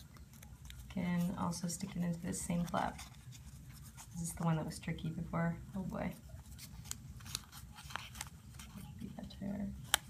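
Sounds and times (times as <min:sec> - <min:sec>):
paper crinkling and ticking: 0:00.0 - 0:04.4, 0:06.1 - 0:10.0.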